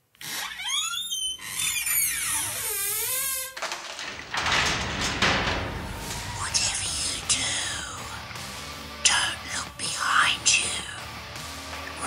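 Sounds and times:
eerie whispering voices: 5.2 - 11.2.

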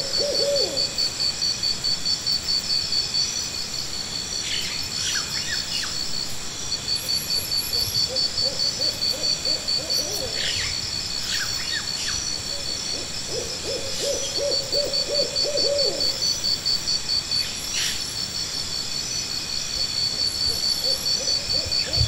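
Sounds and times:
pulsing insect trill: 0.0 - 22.0.

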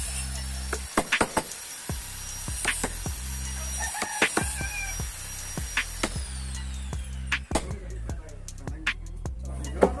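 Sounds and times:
hammer striking chisel into wood: 0.7 - 1.5, 2.6 - 3.1.

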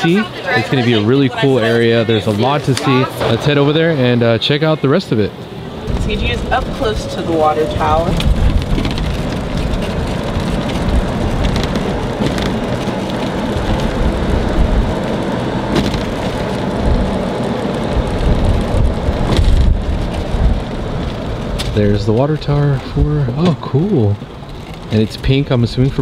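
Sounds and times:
cart rolling over asphalt: 0.0 - 26.0.

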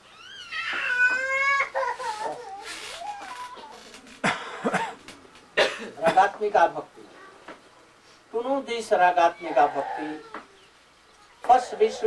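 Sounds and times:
high-pitched wailing cry: 0.0 - 4.0.

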